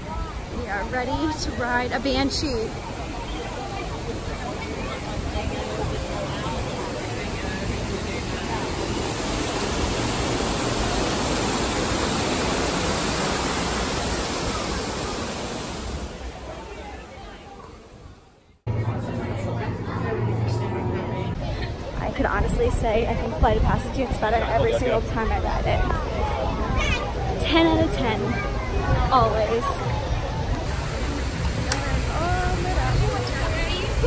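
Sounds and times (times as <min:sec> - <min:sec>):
waterfall rushing: 0:00.0 - 0:18.2, 0:30.5 - 0:34.0.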